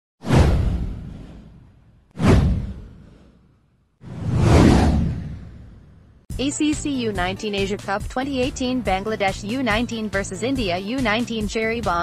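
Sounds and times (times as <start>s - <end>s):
whoosh with deep rumble: 0.2s - 6.3s.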